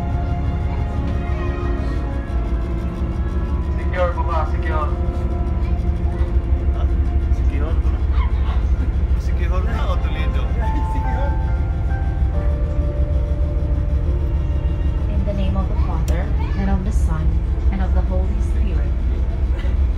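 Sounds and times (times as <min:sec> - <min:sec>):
ferry engines rumbling: 0:00.0 - 0:19.9
voices of passengers: 0:00.0 - 0:19.9.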